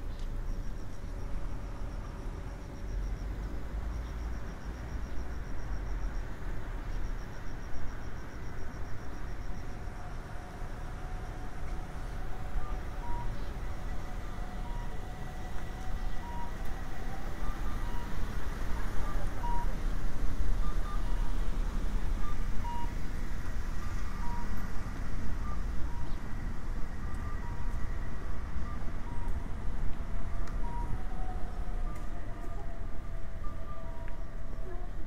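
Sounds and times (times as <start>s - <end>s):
traffic rumble: 0.0s - 35.0s
crossing signal beeps: 0.1s - 10.4s, 12.1s - 19.8s, 20.5s - 23.1s, 23.7s - 29.7s, 30.5s - 31.1s, 31.8s - 34.8s.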